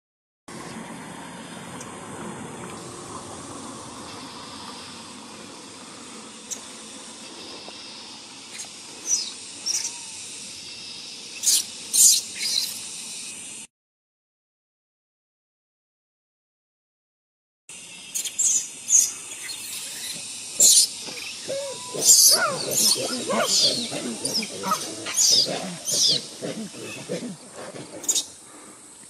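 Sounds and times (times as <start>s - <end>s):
steady outdoor hiss: 0.5s - 13.7s, 17.7s - 29.0s
baby monkey squealing: 19.0s - 27.2s.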